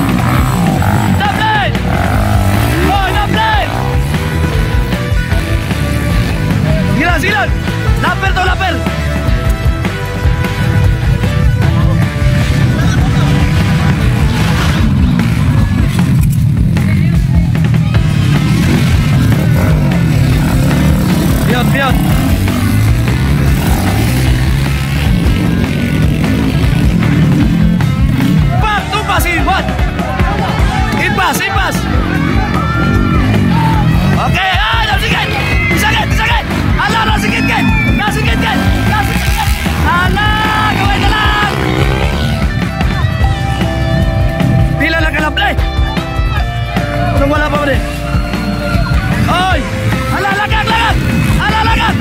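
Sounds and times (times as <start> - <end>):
motorcycle engines revving: 0.0 - 52.0
music track: 0.0 - 52.0.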